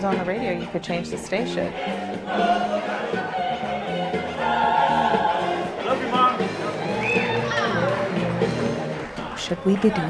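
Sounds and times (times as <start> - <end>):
mixed choir singing: 0.0 - 8.1.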